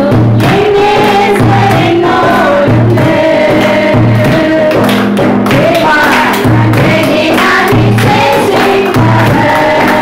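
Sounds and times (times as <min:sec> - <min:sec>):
women singing a hymn: 0:00.0 - 0:10.0.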